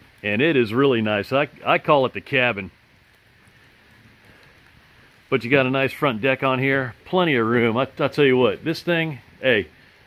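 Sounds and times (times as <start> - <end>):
faint background hiss: 0.0 - 10.0.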